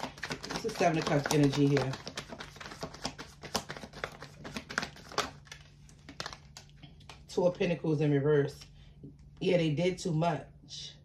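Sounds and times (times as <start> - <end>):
cards shuffling and rustling: 0.0 - 7.3.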